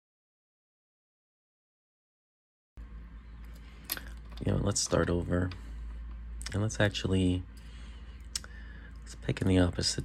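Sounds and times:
low hum: 2.8s - 10.0s.

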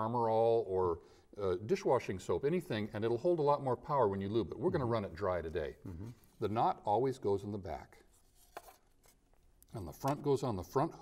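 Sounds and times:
faint handling sounds: 8.0s - 10.3s.

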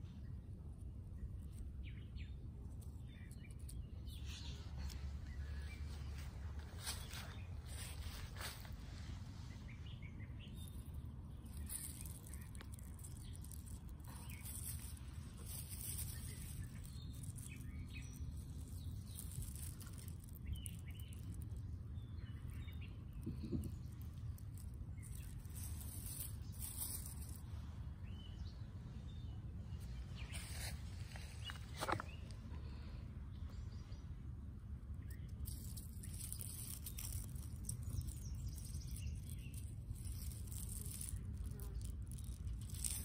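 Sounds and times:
faint bird chirps: 0.0s - 34.3s
steady low rumble: 0.0s - 43.0s
small rustles: 1.1s - 34.1s, 34.8s - 43.0s.

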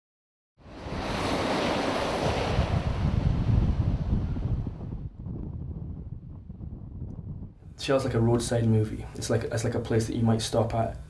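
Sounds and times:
wind buffeting microphone: 0.7s - 8.5s.

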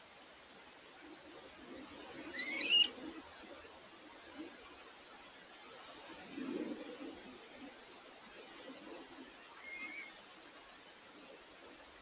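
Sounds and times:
bird whistled call: 2.3s - 2.9s.

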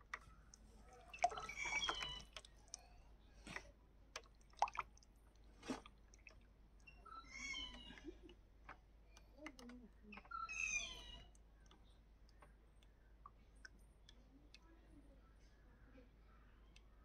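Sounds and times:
high wavering animal calls: 0.8s - 2.9s, 6.9s - 8.3s, 10.1s - 11.3s
faint clicks: 7.7s - 15.6s.

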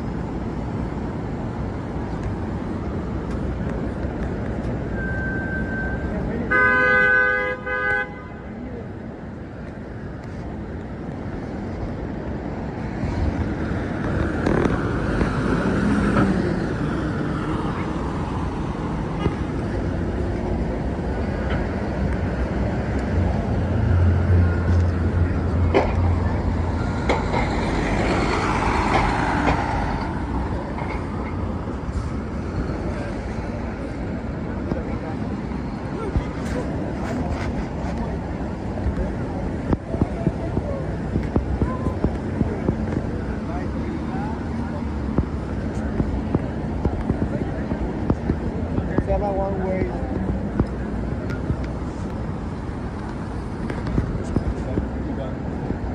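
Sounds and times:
city street traffic: 0.0s - 55.9s
vehicle horn honking: 6.5s - 8.5s.

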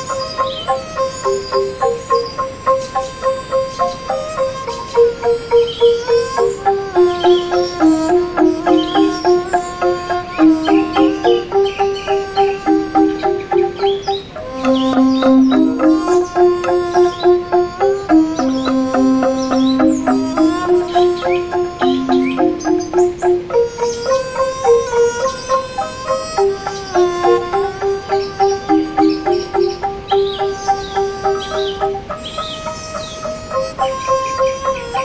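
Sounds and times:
angklung melody: 0.0s - 35.0s
birds chirping: 0.0s - 35.0s.

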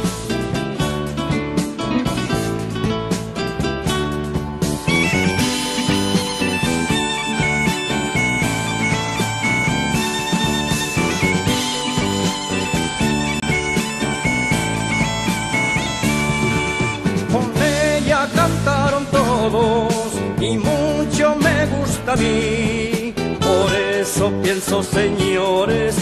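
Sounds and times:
bagpipe melody over drone: 5.4s - 17.0s.

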